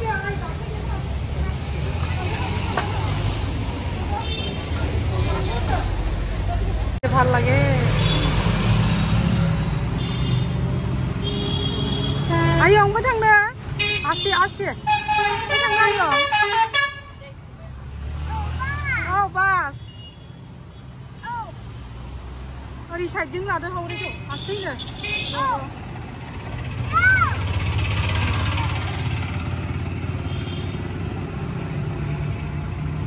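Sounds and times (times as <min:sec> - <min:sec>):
rickshaw road rumble: 0:00.0 - 0:33.0
street traffic noise: 0:00.0 - 0:33.0
vehicle horns tooting: 0:10.0 - 0:10.6, 0:11.2 - 0:13.0, 0:13.8 - 0:17.2, 0:23.8 - 0:25.6, 0:30.2 - 0:30.9.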